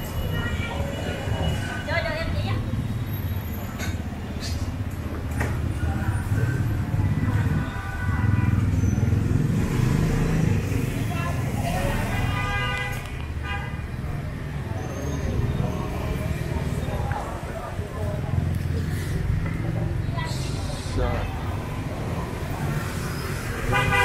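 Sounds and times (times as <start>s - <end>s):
people talking: 0.0s - 2.8s, 11.0s - 12.5s, 14.1s - 22.8s
motorbike engines rumbling: 0.0s - 24.0s.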